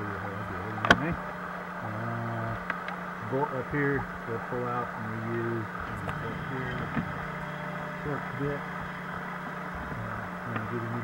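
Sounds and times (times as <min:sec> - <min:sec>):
muffled speech: 0:00.0 - 0:08.8, 0:09.8 - 0:11.0
steady low hum: 0:00.0 - 0:11.0.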